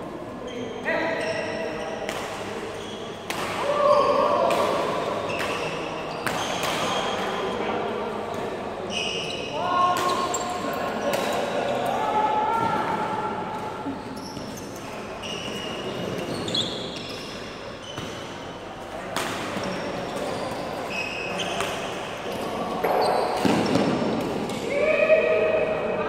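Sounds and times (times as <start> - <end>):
sports shoes squeaking: 0.5 - 2.1, 2.8 - 3.2, 5.3 - 7.1, 8.9 - 10.6, 14.0 - 18.3, 19.6 - 21.6, 22.8 - 23.9.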